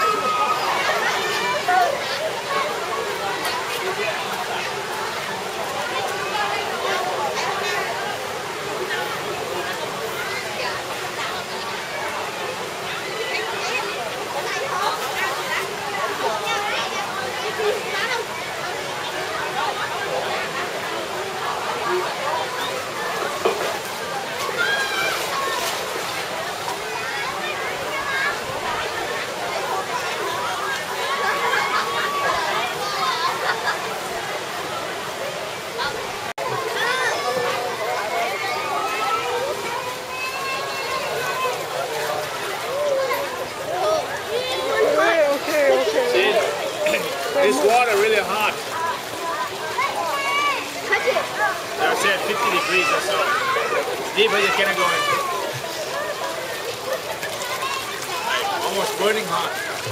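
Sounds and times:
chatter and children's voices: 0:00.0 - 0:59.9
water sloshing and splashing: 0:00.0 - 0:59.9.

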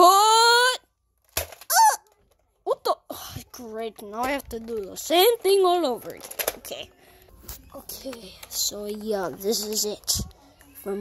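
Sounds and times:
high-pitched vocal cries: 0:01.7 - 0:02.1.

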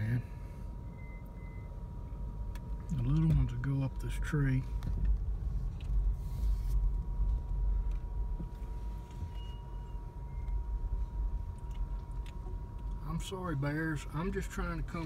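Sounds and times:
car engine and road rumble: 0:00.0 - 0:15.0
faint thin steady tone: 0:08.5 - 0:11.8.

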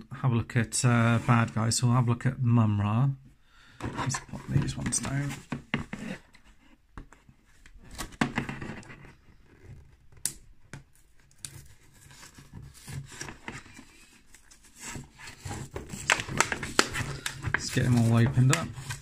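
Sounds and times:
card tearing from plastic: 0:15.4 - 0:19.0
plastic blister pack crinkling: 0:15.4 - 0:19.0.

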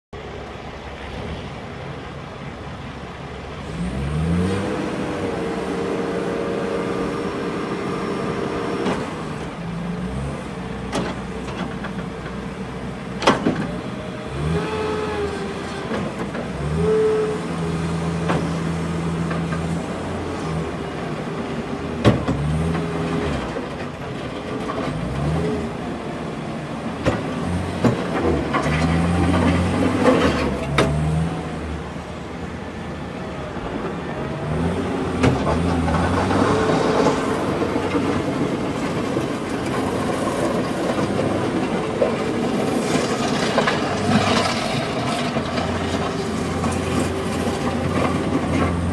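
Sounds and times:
diesel engine revving: 0:03.5 - 0:48.9.

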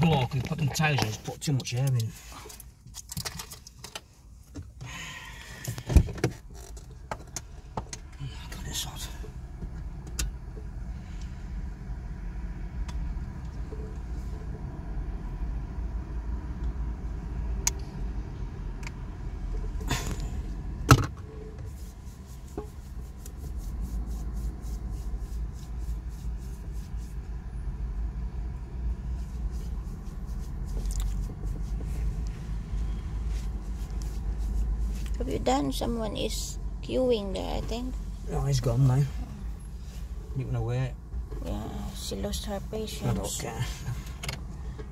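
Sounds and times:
car engine idling: 0:00.0 - 0:44.9.

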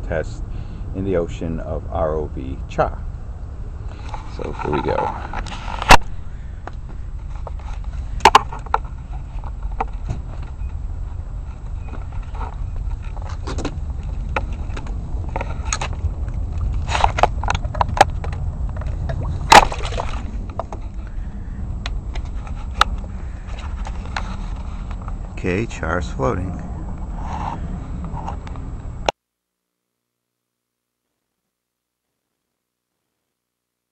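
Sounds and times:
steady low rumble: 0:00.0 - 0:29.1.

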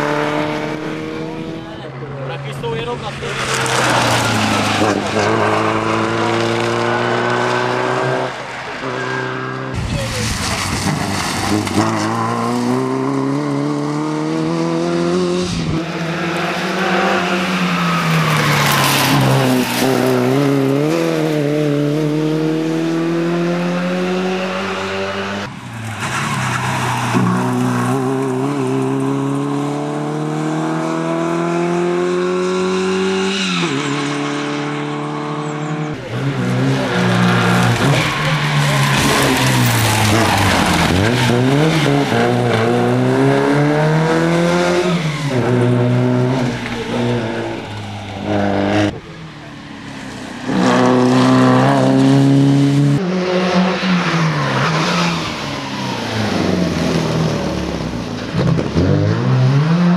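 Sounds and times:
rally car engine accelerating: 0:00.0 - 0:59.9
tyres sliding on gravel: 0:02.4 - 0:06.7, 0:09.8 - 0:12.7, 0:36.8 - 0:43.0.

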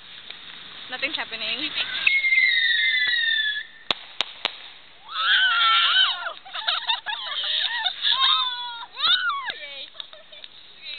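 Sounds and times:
firework whistling: 0:00.0 - 0:10.4
firework cracks: 0:00.0 - 0:10.9
people shrieking: 0:01.8 - 0:03.8, 0:05.0 - 0:09.6.

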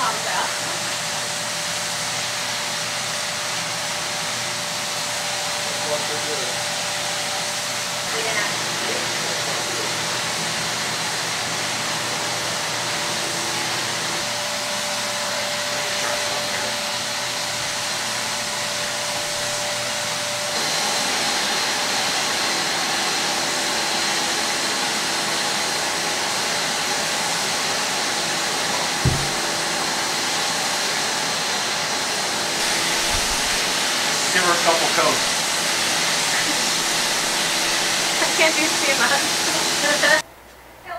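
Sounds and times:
spray turbine blowing air: 0:00.0 - 0:40.2
low thump: 0:29.0 - 0:29.4.

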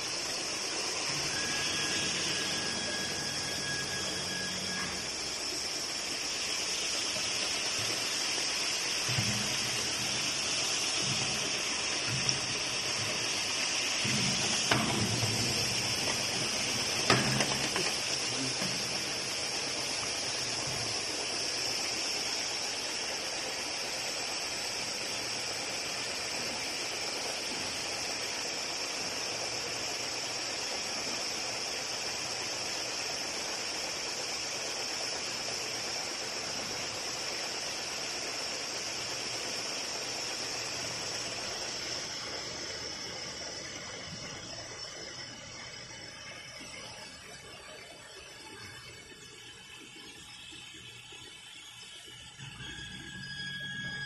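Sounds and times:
steam tunnel hissing: 0:00.0 - 0:54.0.

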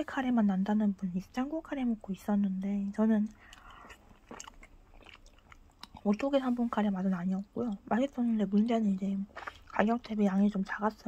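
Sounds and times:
faint chewing: 0:02.8 - 0:10.6.

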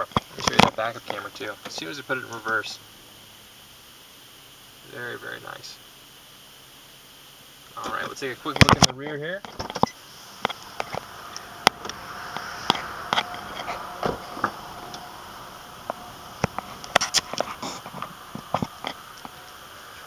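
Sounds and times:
faint steady hiss: 0:00.0 - 0:20.0.

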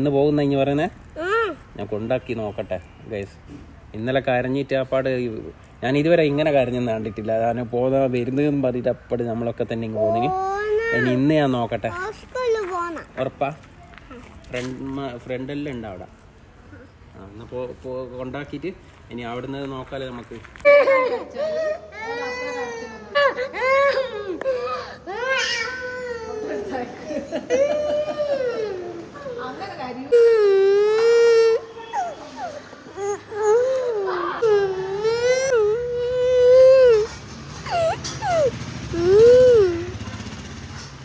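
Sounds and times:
low hum of motor traffic: 0:00.0 - 0:41.0
child whimpering cries: 0:01.2 - 0:01.7, 0:10.0 - 0:11.3, 0:20.6 - 0:40.0
small boy wailing: 0:10.0 - 0:11.3, 0:20.7 - 0:29.5, 0:30.1 - 0:40.0.

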